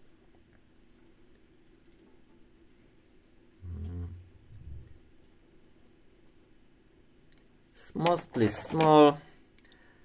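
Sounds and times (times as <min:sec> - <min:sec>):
man murmuring mm: 0:03.6 - 0:04.7.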